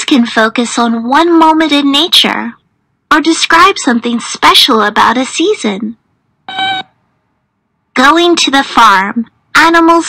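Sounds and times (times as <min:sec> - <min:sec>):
short electronic beep: 0:06.5 - 0:06.9.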